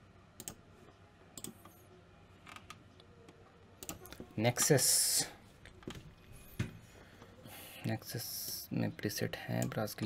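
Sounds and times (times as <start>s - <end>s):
computer mouse clicks: 0.4s - 0.6s, 1.4s - 1.8s, 3.8s - 4.2s.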